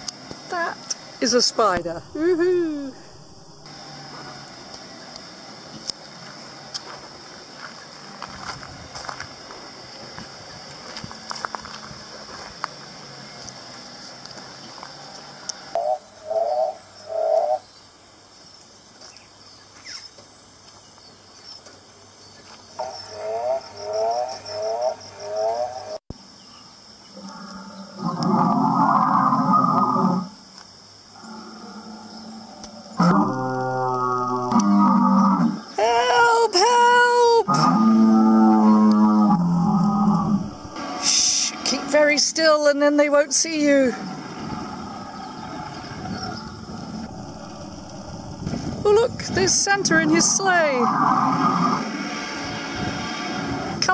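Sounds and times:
dinosaur roars from speaker: 0:27.2 - 0:30.3, 0:31.2 - 0:35.6, 0:37.5 - 0:41.7, 0:50.7 - 0:53.9.

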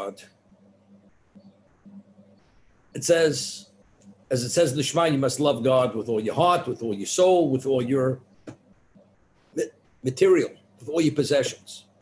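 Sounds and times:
man lecturing: 0:00.0 - 0:00.3, 0:03.0 - 0:03.7, 0:04.3 - 0:08.2, 0:09.6 - 0:12.0.

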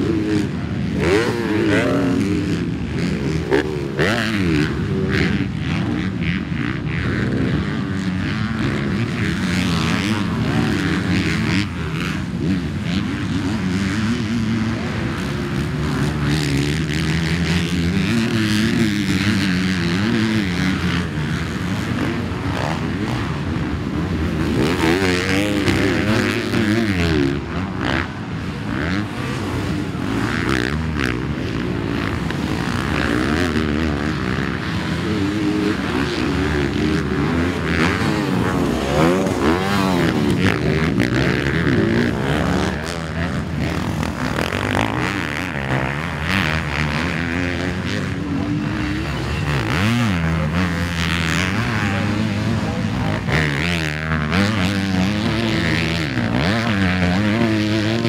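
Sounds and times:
another bike engine: 0:00.0 - 0:58.0
motocross bike engine revving: 0:00.0 - 0:58.0.

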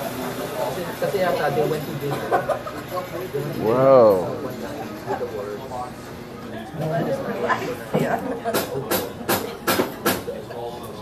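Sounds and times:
people laughing: 0:02.0 - 0:03.0.

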